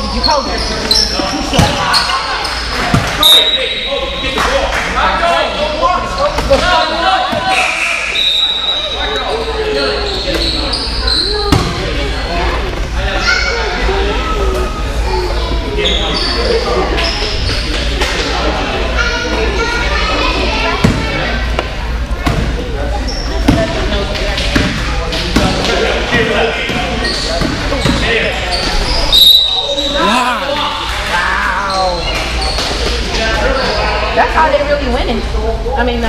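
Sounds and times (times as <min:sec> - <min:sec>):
voices echoing in gym: 0:00.0 - 0:36.0.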